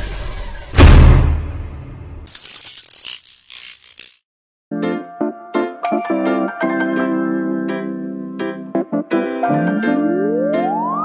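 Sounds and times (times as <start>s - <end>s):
ratcheting mechanical clicks: 2.3s - 4.2s.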